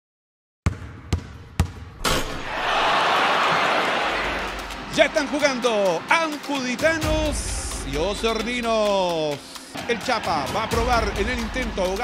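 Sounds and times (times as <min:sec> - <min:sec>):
basketball bouncing: 0:00.6 - 0:02.2.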